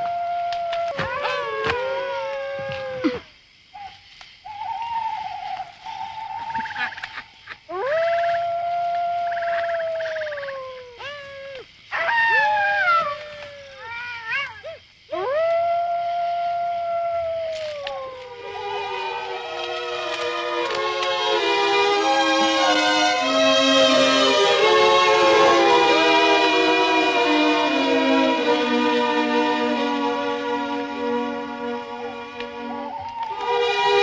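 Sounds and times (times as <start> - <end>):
jackals howling: 0.0 - 18.5, 32.1 - 34.0.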